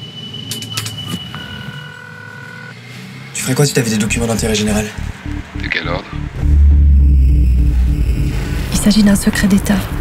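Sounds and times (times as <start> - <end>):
street traffic rumble: 0.0 - 10.0
telephone ringing tone: 1.1 - 2.8.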